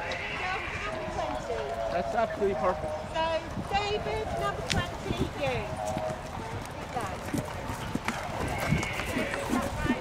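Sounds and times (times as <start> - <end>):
horse hooves cantering on grass: 0.0 - 10.0
people talking: 0.4 - 10.0.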